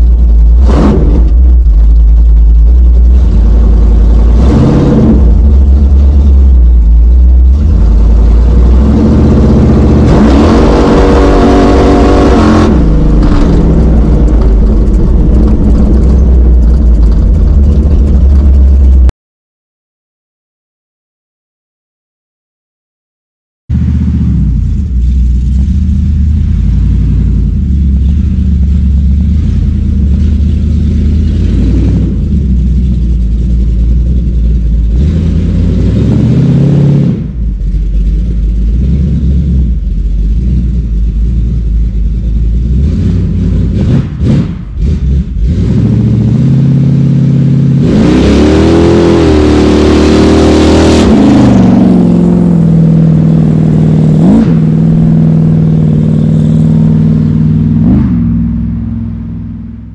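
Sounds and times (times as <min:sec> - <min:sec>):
pickup truck engine revving: 0:00.0 - 0:19.1, 0:23.7 - 0:59.9.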